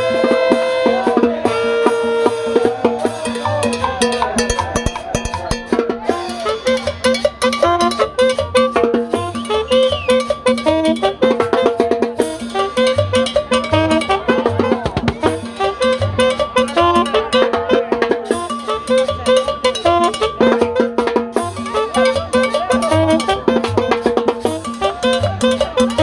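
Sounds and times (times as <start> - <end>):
live band playing salsa music: 0.0 - 26.0.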